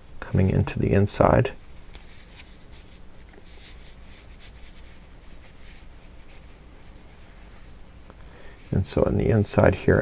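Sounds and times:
low steady hum: 0:00.0 - 0:10.0
yarn rustling and scratching: 0:01.7 - 0:07.9.

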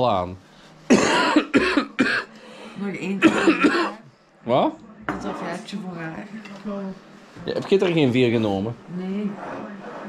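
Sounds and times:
man coughing: 0:00.9 - 0:02.3, 0:03.2 - 0:04.0.

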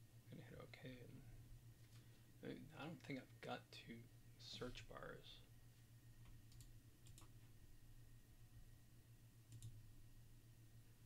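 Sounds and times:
low steady hum: 0:00.0 - 0:11.0
computer mouse clicks: 0:06.3 - 0:07.4, 0:09.5 - 0:09.8.

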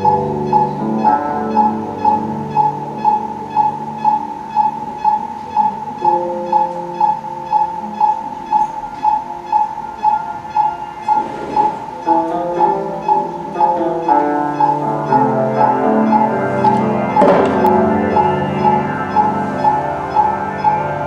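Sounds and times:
heart monitor beeping: 0:00.0 - 0:21.0
sustained keyboard chord: 0:00.0 - 0:21.0.

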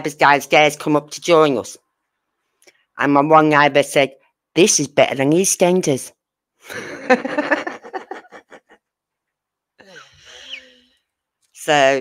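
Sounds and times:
woman laughing: 0:06.7 - 0:08.9
quiet sigh: 0:09.8 - 0:11.1.

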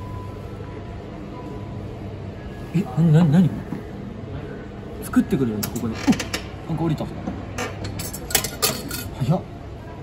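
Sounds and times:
machine creaks and squeaks: 0:05.6 - 0:06.6, 0:07.5 - 0:08.2.

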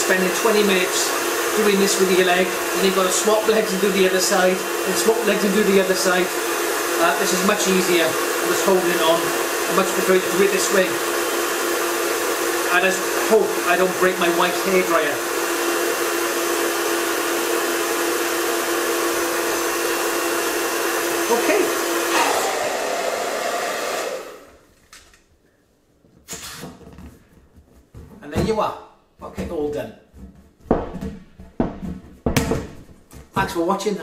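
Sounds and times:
hair dryer blowing air: 0:00.0 - 0:24.7
exercise ball being slapped: 0:30.2 - 0:33.4.

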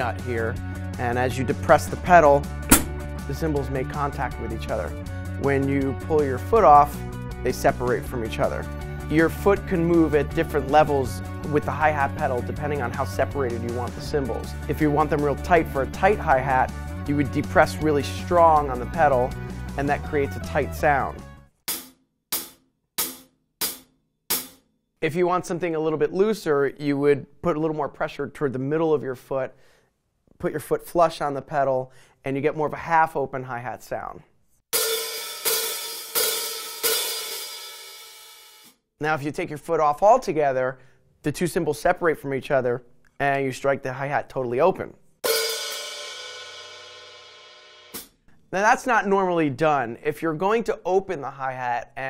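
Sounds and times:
closed hi-hat hits: 0:02.1 - 0:03.6, 0:34.8 - 0:38.7, 0:45.2 - 0:48.2
hi-hat pedal click: 0:02.7 - 0:03.0.

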